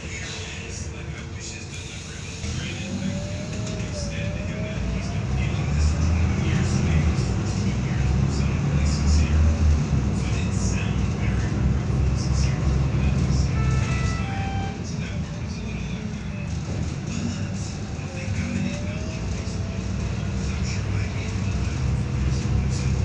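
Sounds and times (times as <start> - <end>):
bus diesel engine droning: 0.0 - 23.0
short high beeps: 13.6 - 14.8.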